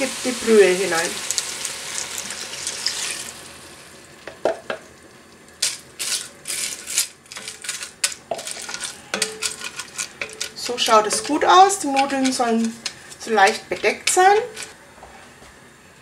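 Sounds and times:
broth hissing in hot pot: 0.0 - 4.1
wooden spoon stirring noodles: 7.4 - 14.8.

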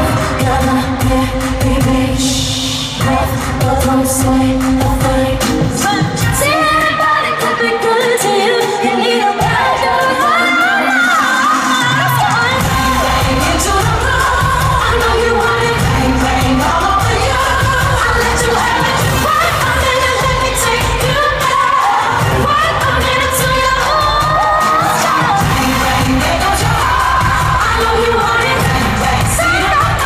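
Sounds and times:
live pop song with female vocals: 0.0 - 30.0.

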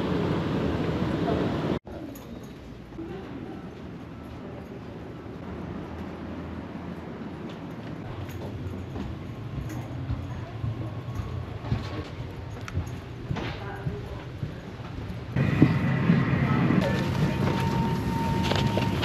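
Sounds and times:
airplane cabin noise: 7.0 - 19.0
passengers murmuring: 13.6 - 19.0.

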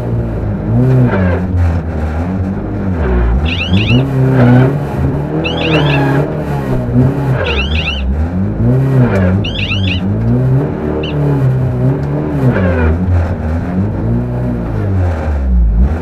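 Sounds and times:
car engine revving: 0.0 - 16.0
high squeals: 3.3 - 4.7, 5.3 - 6.4, 7.3 - 8.2, 9.2 - 10.2, 10.9 - 11.3.

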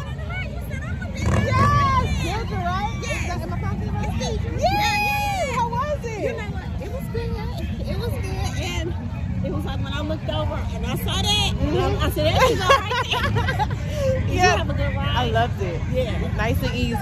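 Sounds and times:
women chatting: 0.0 - 17.0
women laughing: 2.1 - 7.0, 11.7 - 15.0.

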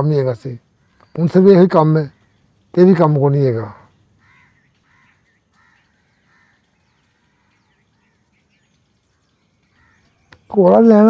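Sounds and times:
faint bird calls: 0.0 - 11.0
thin high bird chirps: 0.7 - 11.0.

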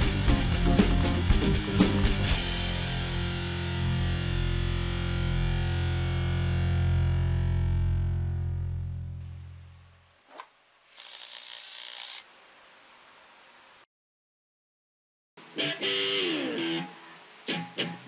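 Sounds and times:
distorted electric guitar chord: 0.0 - 9.7, 15.4 - 18.0.

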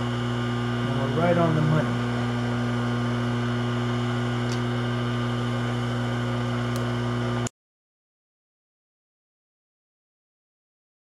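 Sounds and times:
low electrical hum: 0.0 - 7.5.

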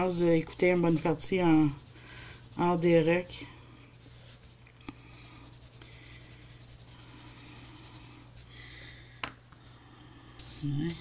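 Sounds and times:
pencil scratching on paper: 0.0 - 3.4, 5.1 - 8.4.

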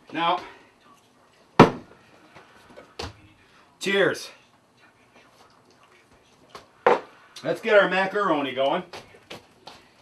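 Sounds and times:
hard objects set down on counter: 6.8 - 7.1.

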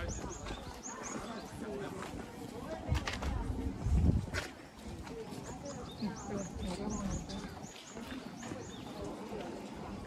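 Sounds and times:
background chatter: 0.0 - 10.0
footsteps on stone path: 0.0 - 10.0.

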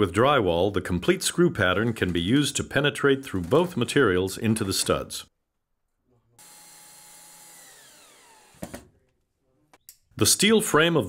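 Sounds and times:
power drill motor whine: 6.4 - 8.9.

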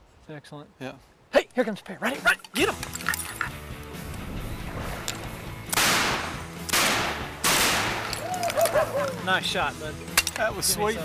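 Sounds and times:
background music: 2.1 - 11.0
shotgun shots: 4.7 - 8.2.

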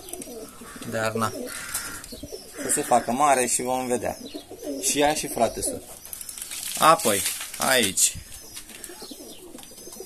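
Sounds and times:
pigeons cooing softly: 0.0 - 10.0.

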